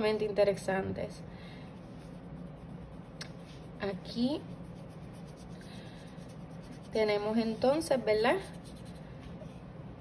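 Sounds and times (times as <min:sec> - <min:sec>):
paintbrush scratching on paper: 0:01.7 - 0:09.2.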